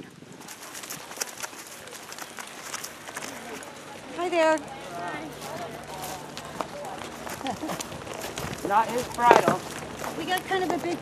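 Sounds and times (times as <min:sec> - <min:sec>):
hoof steps on dirt: 0:00.4 - 0:11.0.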